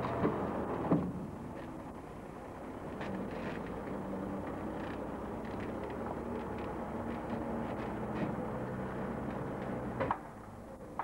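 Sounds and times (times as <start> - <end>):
diesel lorry engine at low revs: 0.0 - 11.0.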